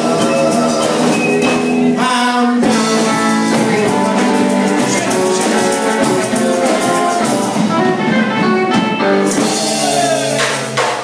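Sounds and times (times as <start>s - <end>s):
electric guitar lead: 0.0s - 11.0s
rockabilly band playing: 0.0s - 11.0s.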